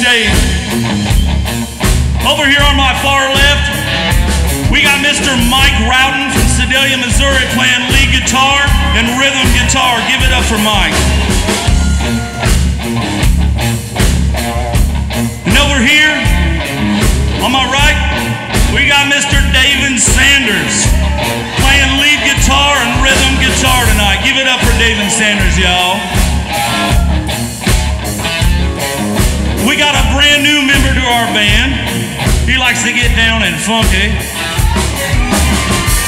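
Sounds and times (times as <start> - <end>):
bass guitar: 0.0 - 36.0
drum kit beat: 0.0 - 36.0
electric guitar lead: 0.0 - 36.0.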